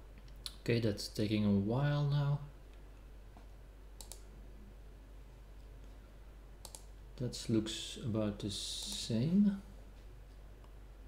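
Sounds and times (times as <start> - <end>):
faint steady hum: 0.0 - 11.0
computer mouse clicks: 4.0 - 4.3, 6.6 - 6.9.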